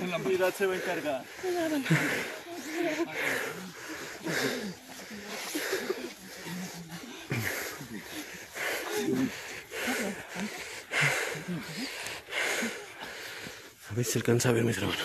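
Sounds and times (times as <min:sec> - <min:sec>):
heavy wheezing breaths: 0:00.0 - 0:14.0
indistinct voices: 0:00.0 - 0:15.0.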